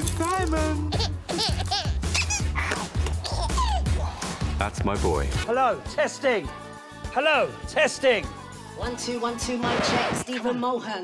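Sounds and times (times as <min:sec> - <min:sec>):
background music with bass: 0:00.0 - 0:10.2.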